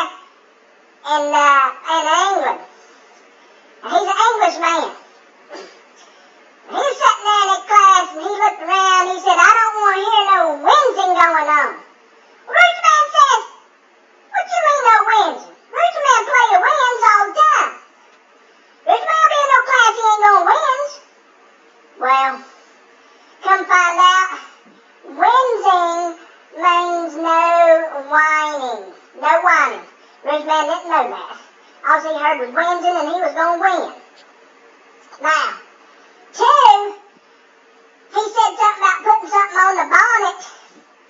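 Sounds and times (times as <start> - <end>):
high-pitched voice speaking sing-song: 22.0 - 22.5, 23.4 - 24.5, 25.1 - 34.0, 35.2 - 35.6.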